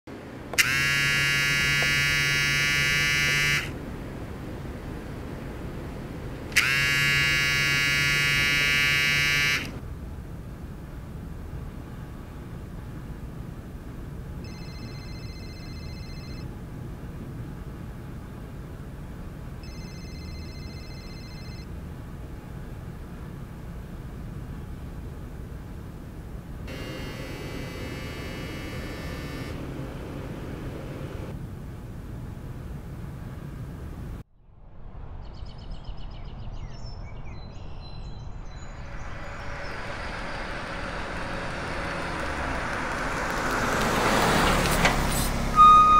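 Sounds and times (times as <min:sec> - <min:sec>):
mobile phone ringing: 0:00.6 - 0:03.7, 0:06.6 - 0:09.8, 0:14.4 - 0:16.5, 0:19.6 - 0:21.7, 0:26.7 - 0:30.2
buzzy phone ring: 0:00.6 - 0:03.8, 0:06.6 - 0:09.8, 0:14.4 - 0:16.5, 0:19.6 - 0:21.7, 0:26.7 - 0:31.3, 0:45.6 - 0:45.9
electric school bell buzzing: 0:00.6 - 0:03.8, 0:06.5 - 0:09.8, 0:14.4 - 0:16.5, 0:19.6 - 0:21.6, 0:26.7 - 0:31.3, 0:39.0 - 0:43.3, 0:45.6 - 0:45.9.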